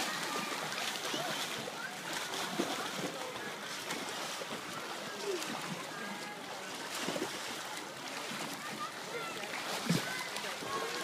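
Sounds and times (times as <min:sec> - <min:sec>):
faint voices of onlookers: 0:00.0 - 0:11.0
water splashing from swimmers: 0:00.0 - 0:11.0.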